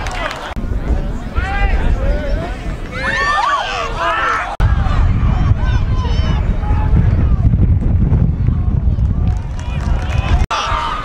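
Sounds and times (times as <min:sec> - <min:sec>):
people shouting: 0:01.4 - 0:07.0.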